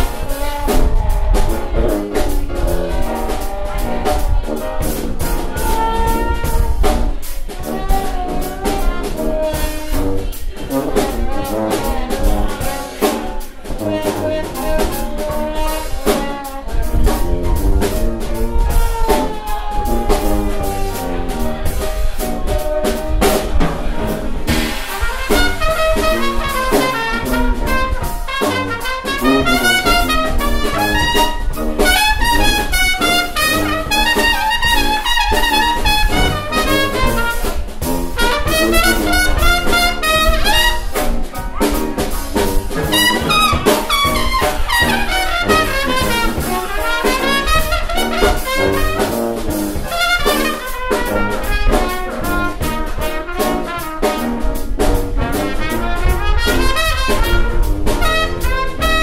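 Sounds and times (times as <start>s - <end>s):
jazz band playing: 0.0s - 59.0s
trombone: 0.0s - 59.0s.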